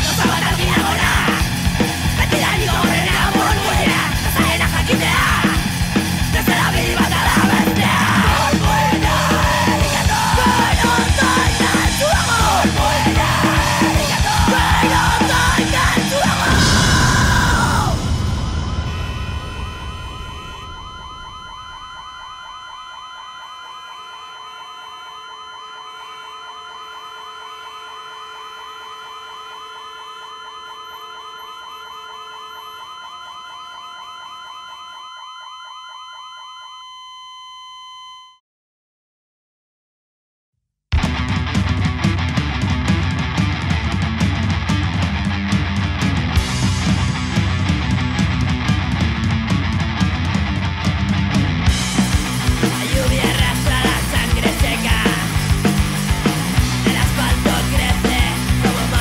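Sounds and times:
punk band playing distorted music: 0.0 - 21.8, 40.9 - 59.0
warbling siren-like tone: 0.0 - 38.3.

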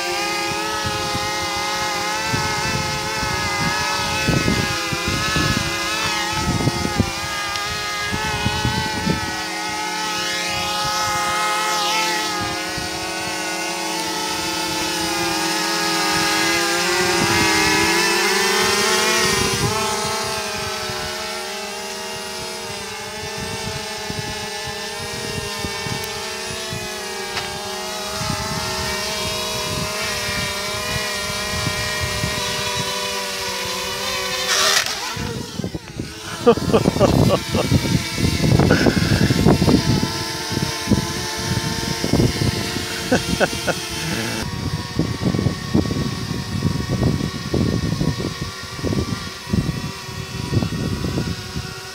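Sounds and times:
drone propellers whining: 0.0 - 51.9
wind buffeting microphone: 0.4 - 11.6, 12.3 - 51.9.

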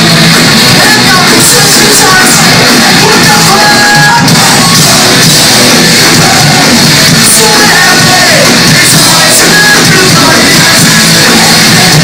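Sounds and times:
drums: 0.0 - 12.0
electric guitars: 0.0 - 12.0
person singing: 0.4 - 12.0.

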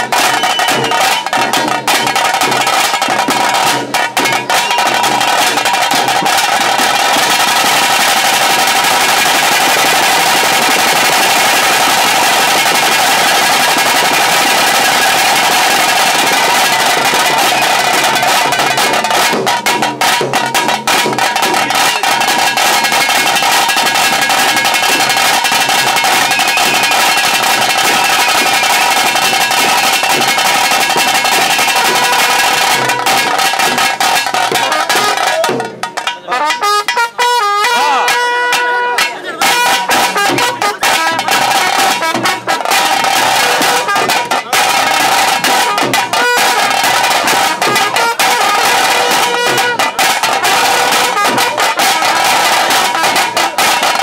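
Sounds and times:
fast drumming with sticks: 0.0 - 54.0.

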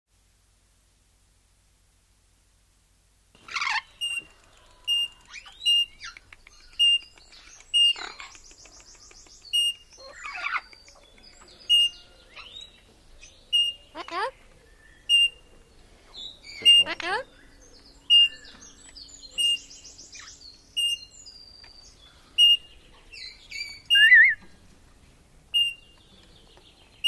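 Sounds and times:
parrot whistling calls: 23.8 - 24.4.

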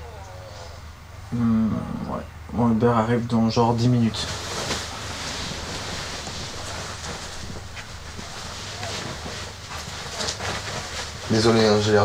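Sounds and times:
low room hum: 0.0 - 12.0
bedding rustling: 2.6 - 12.0.

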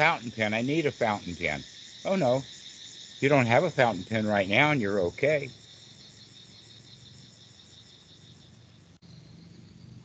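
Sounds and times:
insects chirring: 0.0 - 10.0
low hum: 8.5 - 10.0.

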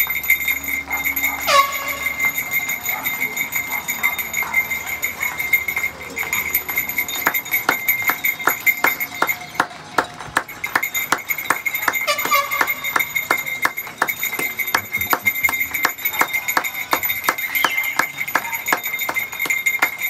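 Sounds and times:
bell struck rapidly: 0.0 - 20.0.

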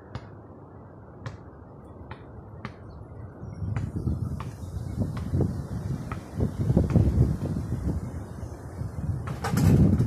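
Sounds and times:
basketball bouncing on asphalt: 0.0 - 0.4, 1.2 - 3.0, 3.7 - 7.3
wind rumble on microphone: 2.4 - 10.0.

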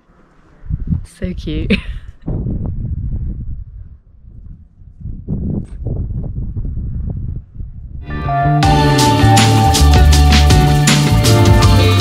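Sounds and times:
wind buffeting microphone: 0.5 - 8.1.

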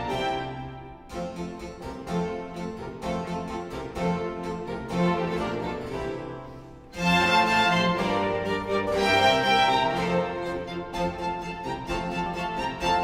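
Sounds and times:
baroque string orchestra: 0.0 - 13.0
harpsichord plucking: 0.0 - 13.0.

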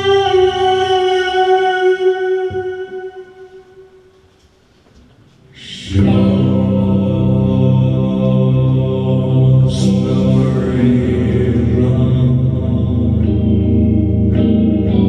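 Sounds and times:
droning electric guitar chords: 0.0 - 4.2, 5.7 - 15.0.

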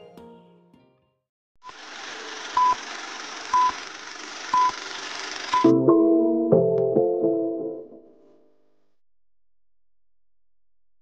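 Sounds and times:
music: 0.0 - 1.3, 5.6 - 8.2.

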